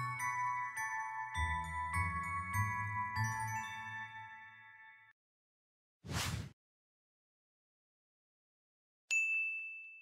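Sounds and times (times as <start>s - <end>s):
bright bell ding: 9.1s - 10.0s.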